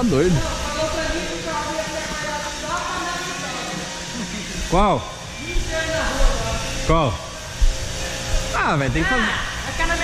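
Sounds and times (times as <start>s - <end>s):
men talking: 0.0s - 0.5s, 4.1s - 5.4s, 6.7s - 7.4s, 8.4s - 9.4s
steady background hum: 0.0s - 10.0s.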